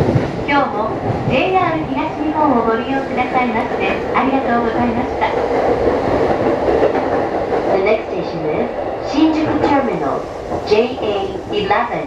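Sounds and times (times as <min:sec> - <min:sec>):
clickety-clack over rail joints: 0:00.0 - 0:12.0
rumble of train wheels on rail: 0:00.0 - 0:12.0.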